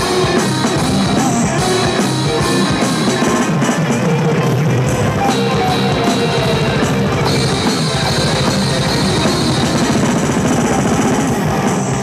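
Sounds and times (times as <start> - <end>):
electronic drum kit playing: 0.0 - 12.0
thrash metal song: 0.0 - 12.0.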